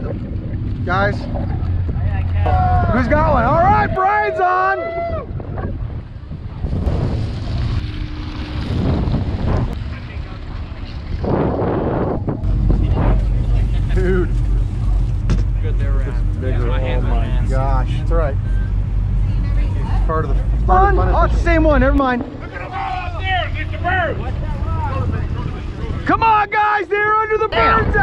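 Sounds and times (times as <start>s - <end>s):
voices: 0.0s - 5.8s, 9.8s - 28.0s
boat engine low drone: 0.0s - 28.0s
water noise: 0.0s - 28.0s
wind buffeting microphone: 0.0s - 28.0s.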